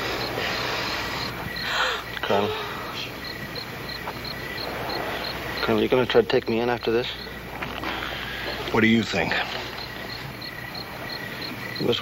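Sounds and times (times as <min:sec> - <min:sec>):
crickets chirping: 0:00.0 - 0:12.0
woman moaning: 0:01.6 - 0:03.0.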